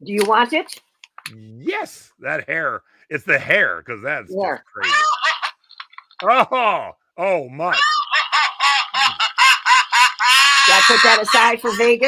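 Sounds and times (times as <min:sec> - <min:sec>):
toy mechanical cackle: 0:04.8 - 0:06.3, 0:07.7 - 0:12.0.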